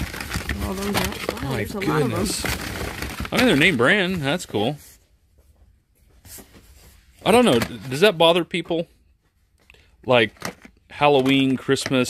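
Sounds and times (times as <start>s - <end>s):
cardboard boxes rustling and scraping: 0.0s - 5.0s.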